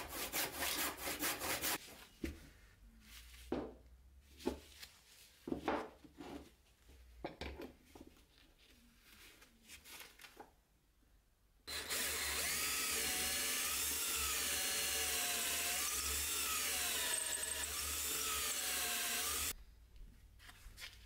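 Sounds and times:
drill boring into wood: 0:11.7 - 0:19.5.

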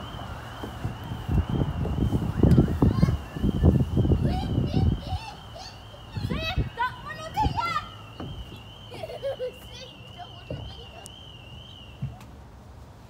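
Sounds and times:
children calling and chattering: 0:00.6 - 0:12.3.

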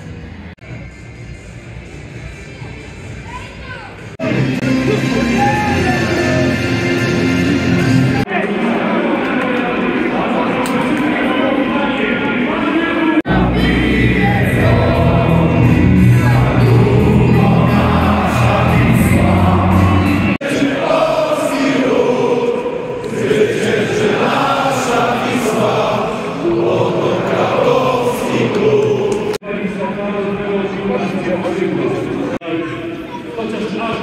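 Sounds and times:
music over loudspeakers: 0:00.1 - 0:08.3, 0:13.3 - 0:20.4
stadium crowd singing: 0:04.2 - 0:34.0.

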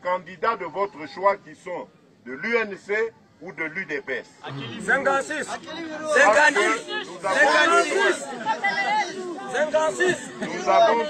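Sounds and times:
background chatter: 0:00.0 - 0:11.0
man addressing a crowd: 0:00.0 - 0:11.0.

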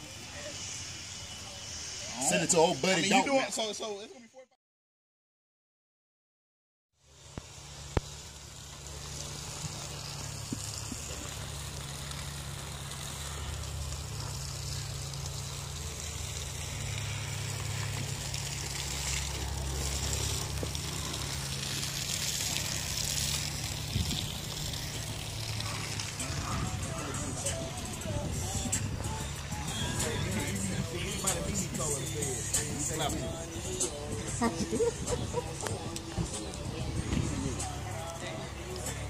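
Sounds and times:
constant hiss: 0:00.0 - 0:04.2, 0:07.0 - 0:39.0
car engine idling: 0:07.4 - 0:34.4.

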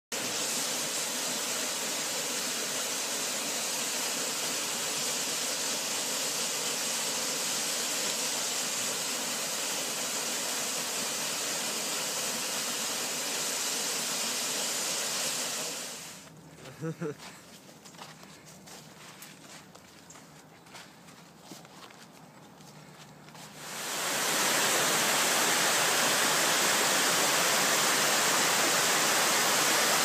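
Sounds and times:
waterfall rushing: 0:00.1 - 0:16.2, 0:23.6 - 0:30.0.

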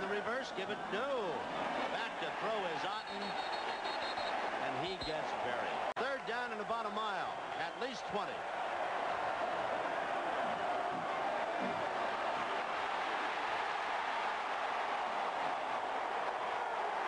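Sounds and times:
stadium crowd noise: 0:00.0 - 0:17.0.

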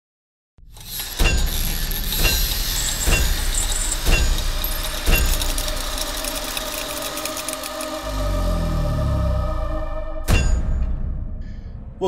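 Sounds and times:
crackling sparks: 0:00.7 - 0:08.2
hammer striking iron on anvil: 0:01.2 - 0:05.3, 0:10.3 - 0:10.9.

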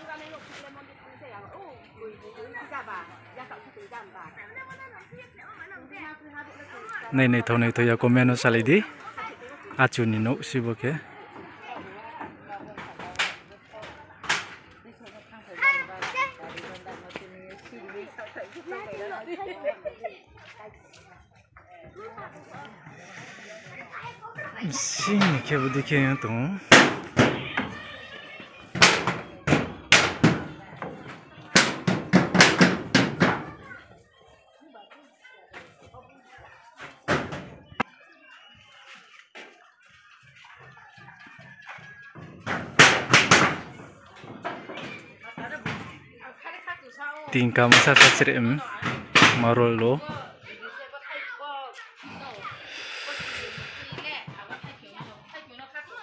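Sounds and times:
children talking and calling: 0:00.0 - 0:56.0
stick knocking on metal roof: 0:31.6 - 0:33.5.

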